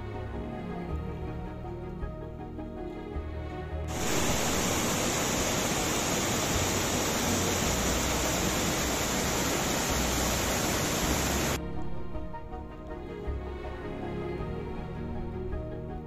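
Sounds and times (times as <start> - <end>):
faint music: 0.0 - 16.0
water rushing over boulders: 3.9 - 11.6.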